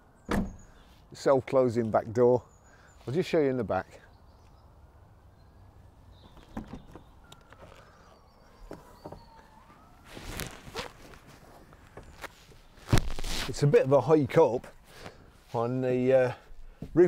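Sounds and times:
quiet footsteps: 8.6s - 13.6s
rustling scrape: 10.0s - 13.7s.

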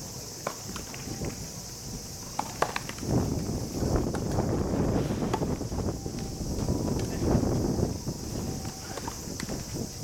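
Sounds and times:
low wind rumble: 0.0s - 10.0s
faint footsteps: 2.5s - 9.9s.

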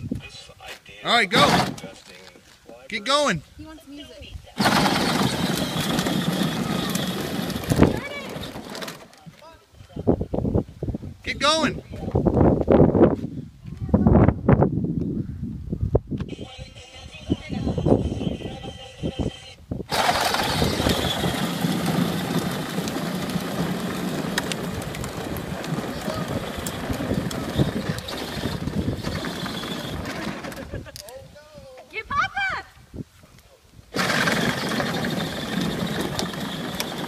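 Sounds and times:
toy truck motor and wheels: 4.6s - 9.2s, 17.7s - 30.8s, 33.9s - 37.0s.

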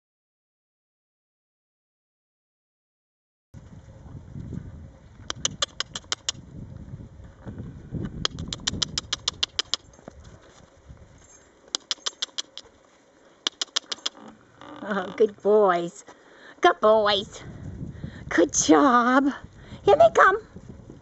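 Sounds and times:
rapid clicks: 8.3s - 9.8s, 11.7s - 12.7s, 13.4s - 14.2s.

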